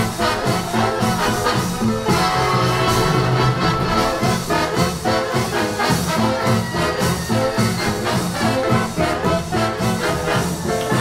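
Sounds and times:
swing big band playing: 0.0s - 11.0s.

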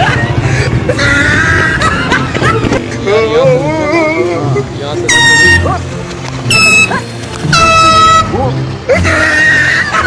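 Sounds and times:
background music: 0.0s - 10.0s
air horn blasts: 5.1s - 5.8s, 6.5s - 8.4s.

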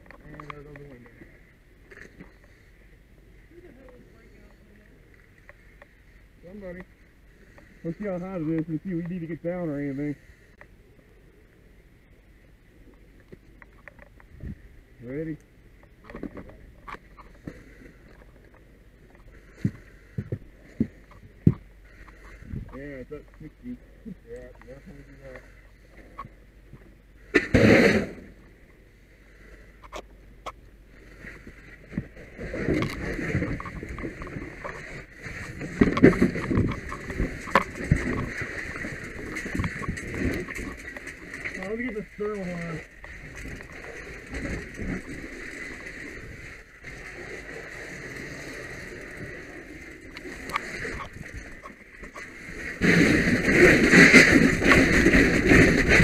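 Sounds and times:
steady low rumble: 0.0s - 56.0s
muffled thumps: 19.5s - 22.8s
gear rustling and knocking: 32.7s - 42.0s.

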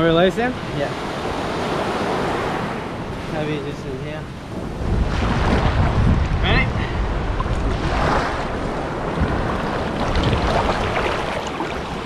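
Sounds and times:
surf washing: 0.0s - 12.0s
wind buffeting microphone: 0.0s - 12.0s
water sloshing around wading legs: 7.4s - 12.0s.

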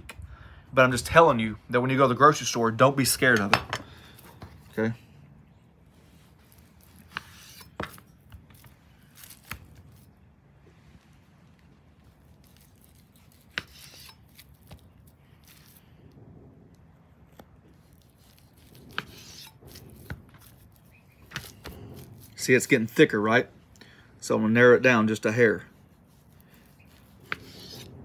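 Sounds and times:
knife slicing meat: 12.3s - 15.8s, 17.7s - 22.4s, 25.4s - 28.0s.

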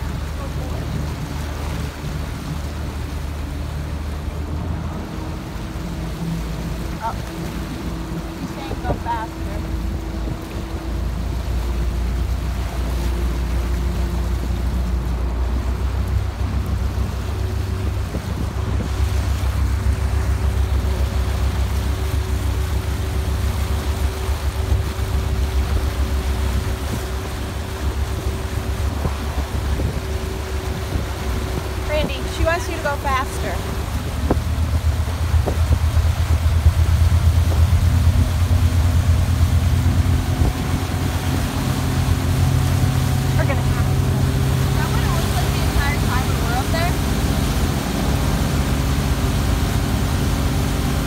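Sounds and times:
motorboat engine running: 0.0s - 51.0s
wake churning water: 0.0s - 51.0s.

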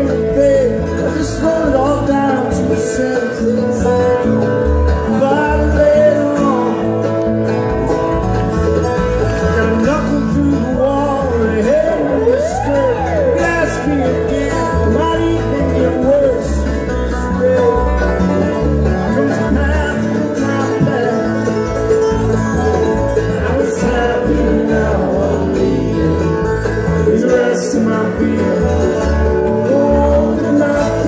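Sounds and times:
banjo picking: 0.0s - 31.0s
bluegrass band playing: 0.0s - 31.0s.

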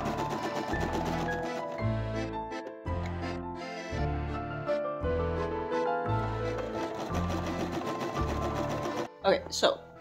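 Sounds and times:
sewing machine stitching: 0.0s - 1.8s, 6.5s - 9.2s.

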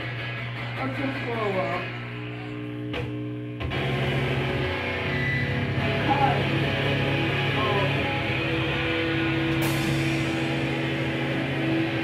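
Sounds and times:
distorted electric guitars: 0.0s - 12.0s
live rock band: 0.0s - 12.0s.

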